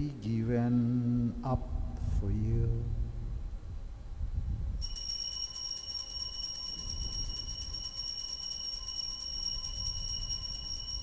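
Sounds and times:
altar bells jingling: 4.8s - 11.0s.

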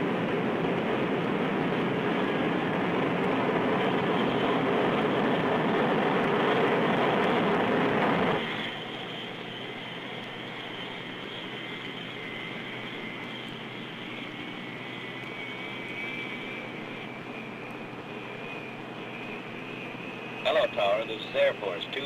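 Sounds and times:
high engine whine: 0.0s - 22.0s
jet engines running: 0.0s - 22.0s.

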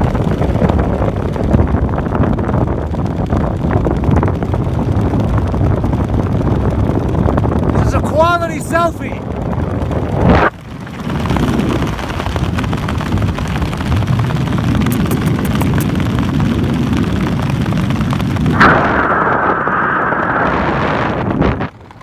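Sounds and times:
aircraft engine: 0.0s - 22.0s
heavy wind buffeting microphone: 0.0s - 22.0s
high rushing of air: 7.5s - 16.7s, 17.6s - 22.0s.

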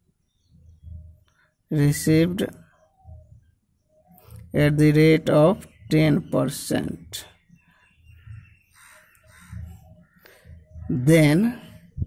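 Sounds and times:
man's voice: 1.7s - 2.6s, 4.6s - 7.3s, 10.8s - 11.9s
crow cawing: 8.3s - 10.4s.

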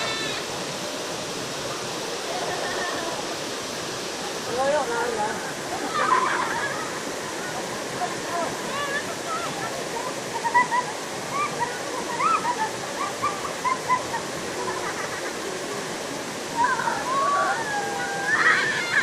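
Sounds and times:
stream rushing over rocks: 0.0s - 19.0s
children's voices: 8.4s - 15.3s, 16.6s - 19.0s.

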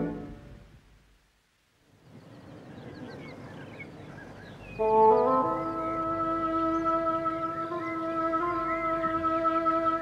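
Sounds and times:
birds chirping: 1.8s - 10.0s.

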